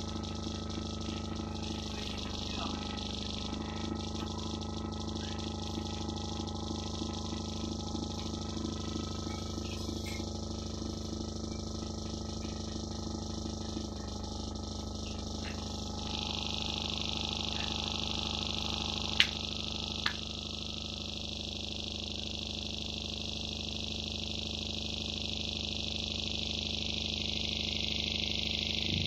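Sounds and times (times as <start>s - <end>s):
layered electronic hum drone: 0.0s - 29.0s
rapid electronic pulsing: 0.0s - 29.0s.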